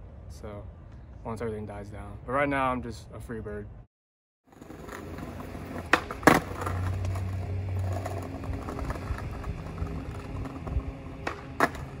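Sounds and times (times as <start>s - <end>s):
skateboard clacking on pavers: 4.5s - 12.0s
skateboard wheels rumbling: 4.5s - 12.0s.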